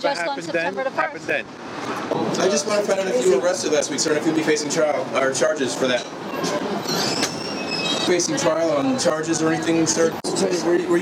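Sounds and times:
high metallic squealing: 0:05.9 - 0:08.5.

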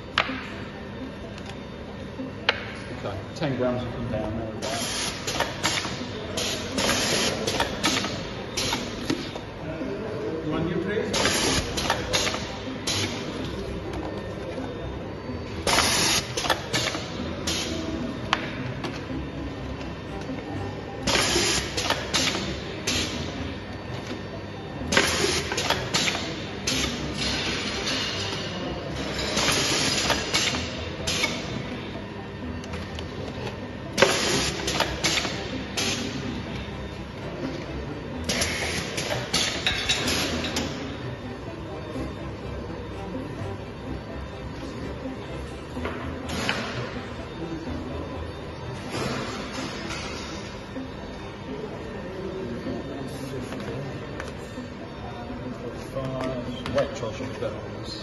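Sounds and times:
steady machine noise: 0:00.0 - 0:55.6.

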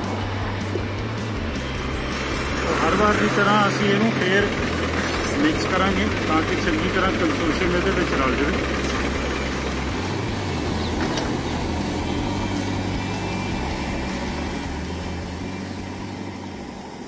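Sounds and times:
diesel engine droning: 0:00.0 - 0:17.0.

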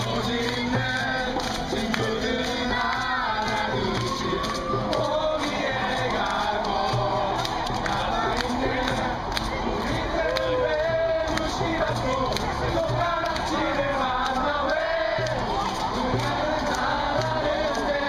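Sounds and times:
crowd chatter: 0:00.0 - 0:18.0
crowd cheering: 0:00.0 - 0:18.0
group singing: 0:00.0 - 0:18.0.

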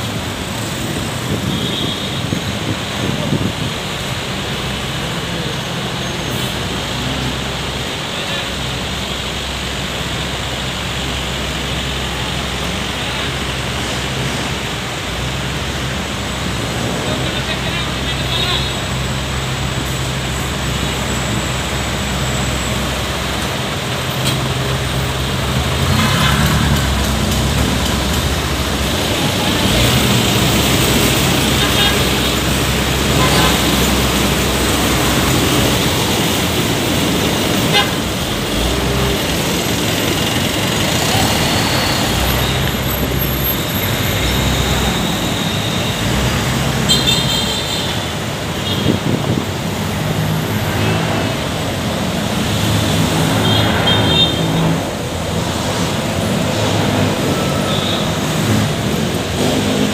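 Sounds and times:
traffic engines idling: 0:00.0 - 0:59.9
passersby talking: 0:26.7 - 0:43.4
vehicle horn toot: 0:37.7 - 0:38.1, 0:46.8 - 0:47.9.

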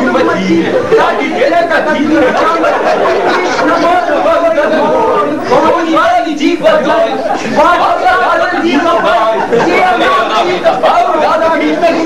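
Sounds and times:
several voices talking: 0:00.0 - 0:12.0.

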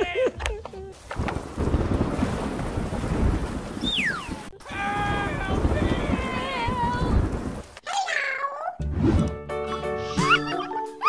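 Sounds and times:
wind buffeting microphone: 0:00.9 - 0:07.8.

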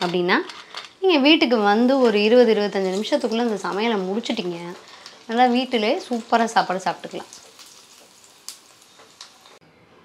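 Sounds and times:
frying oil sizzling: 0:01.7 - 0:09.6.

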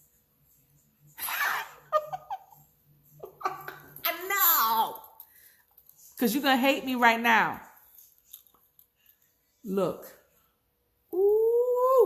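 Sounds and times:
woman laughing: 0:01.2 - 0:04.0.

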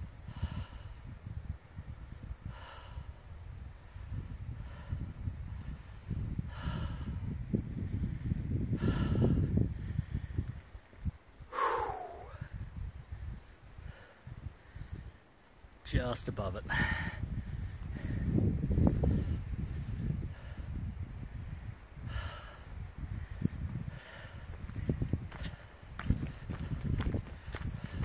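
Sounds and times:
person breathing hard: 0:00.2 - 0:01.1, 0:02.4 - 0:03.3, 0:04.6 - 0:05.8, 0:06.4 - 0:07.3, 0:08.7 - 0:10.4, 0:11.5 - 0:12.6, 0:16.7 - 0:18.4, 0:19.1 - 0:20.8, 0:22.0 - 0:24.6
voiced sigh: 0:11.5 - 0:12.5.

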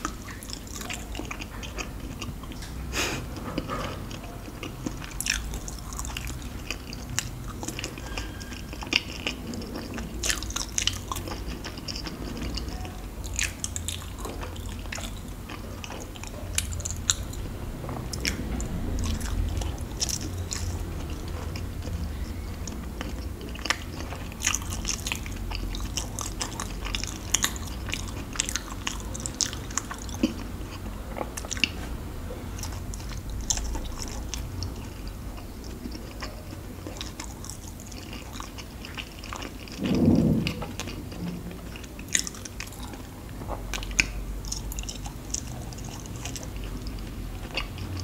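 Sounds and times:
chewing soft sweets: 0:00.0 - 0:48.0
low steady hum: 0:00.0 - 0:48.0.

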